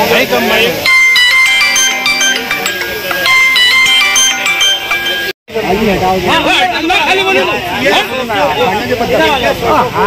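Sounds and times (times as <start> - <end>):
electronic ringtone melody: 0.8 - 5.4.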